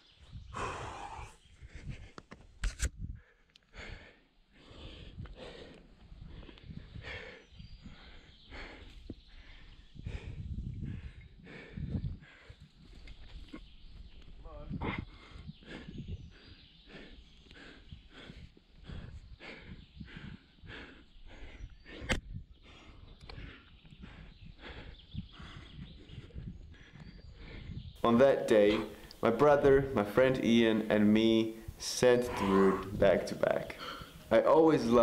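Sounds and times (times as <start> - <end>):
hard breathing exhales: 32.2 - 33.0
person grunting: 32.2 - 33.0.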